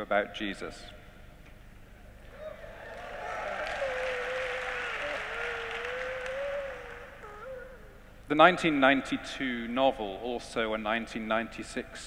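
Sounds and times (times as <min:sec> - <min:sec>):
audience applauding and cheering: 0:02.3 - 0:07.3
person holding long cheer: 0:02.3 - 0:07.3.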